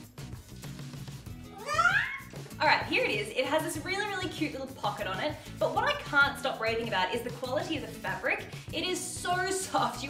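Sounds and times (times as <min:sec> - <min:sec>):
soft background music: 0:00.0 - 0:10.0
parrot squawk: 0:01.6 - 0:02.4.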